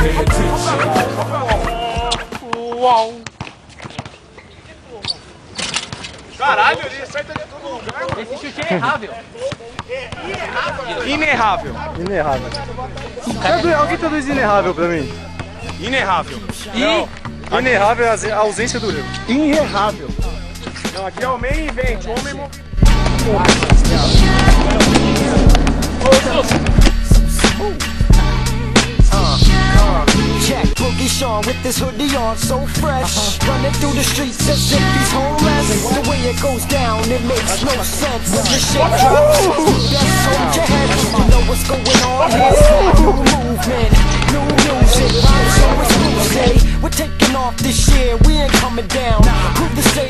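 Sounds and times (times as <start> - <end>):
deep bassline: 0.0 - 2.2, 21.9 - 50.0
hip-hop beat: 0.0 - 2.6, 18.6 - 50.0
faint voices: 35.0 - 47.0.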